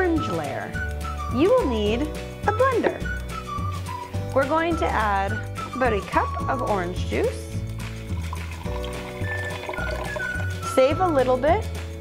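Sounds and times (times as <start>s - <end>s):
background music: 0.0s - 12.0s
juice pouring into blender jar: 8.0s - 10.7s.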